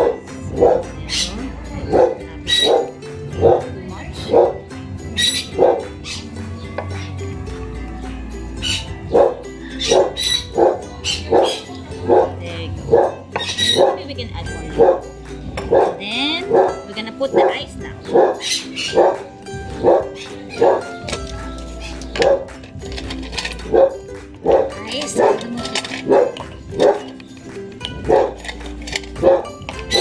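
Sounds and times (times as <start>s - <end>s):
dog barking: 0.0s - 1.3s, 1.9s - 3.7s, 4.3s - 4.6s, 5.2s - 6.2s, 8.7s - 14.0s, 14.8s - 15.1s, 15.7s - 17.5s, 18.1s - 19.2s, 19.8s - 20.9s, 23.7s - 27.1s, 28.0s - 28.4s, 29.2s - 30.0s.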